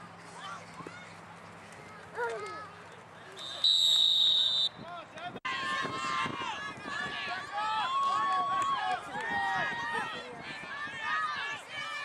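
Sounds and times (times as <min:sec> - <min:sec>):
many voices shouting: 0:05.5 - 0:12.0.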